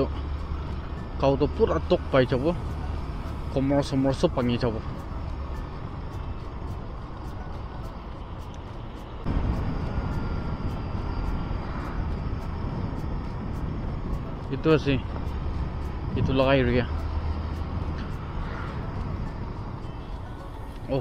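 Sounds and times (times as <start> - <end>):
wind and road rumble: 0.0 - 21.0.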